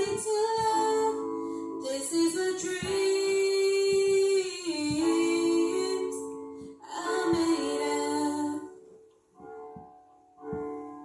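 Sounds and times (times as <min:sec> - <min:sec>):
woman singing and humming: 0:00.0 - 0:08.8.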